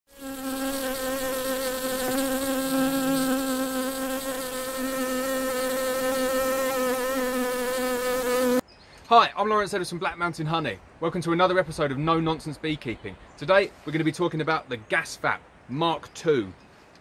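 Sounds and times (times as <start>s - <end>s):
honeybee buzzing: 0.1s - 8.6s.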